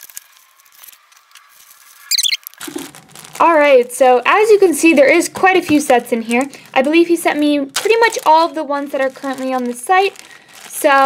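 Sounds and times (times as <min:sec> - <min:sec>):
plastic bags rustling: 0:00.0 - 0:11.0
high-pitched squeak: 0:02.1 - 0:02.4.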